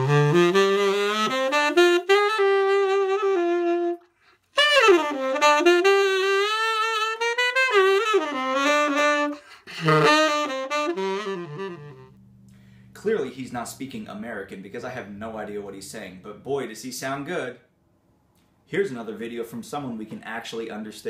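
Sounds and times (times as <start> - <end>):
saxophone playing smooth jazz: 0.0 - 13.4.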